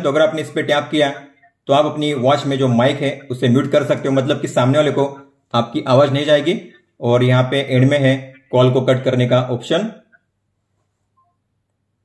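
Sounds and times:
faint electronic phone beeps: 0:00.3 - 0:10.4, 0:11.1 - 0:11.7.

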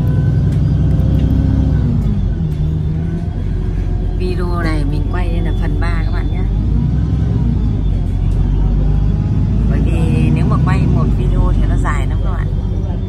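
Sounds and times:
bus engine rumble: 0:00.0 - 0:13.0
road noise: 0:00.0 - 0:13.0.

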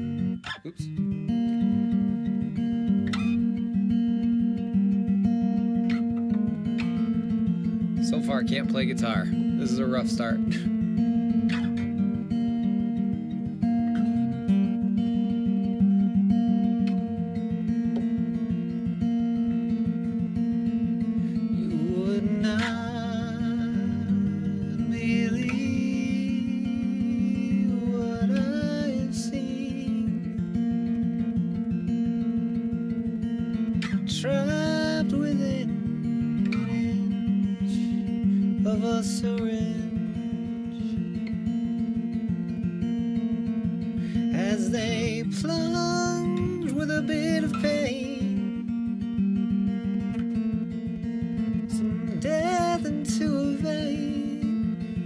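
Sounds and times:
acoustic guitar: 0:00.0 - 0:55.0.

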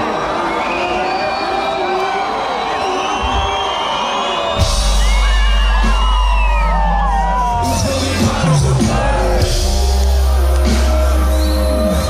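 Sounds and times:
crowd screaming and whooping: 0:00.0 - 0:12.0
deep bass from sound system: 0:04.6 - 0:12.0.

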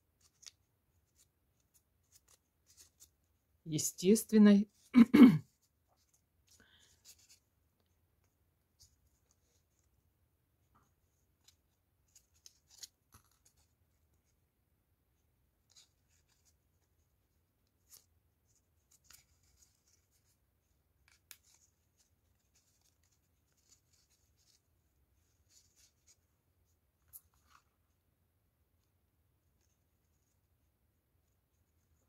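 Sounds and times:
hands handling foam petals: 0:05.6 - 0:14.4.

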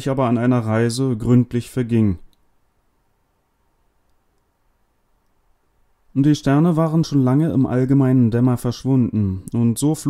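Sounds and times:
man reading aloud: 0:00.0 - 0:02.3, 0:06.1 - 0:10.0
faint room hiss: 0:00.0 - 0:10.0.

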